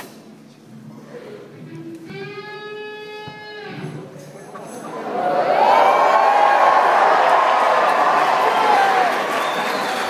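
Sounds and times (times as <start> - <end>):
low hall murmur: 0.0 - 10.0.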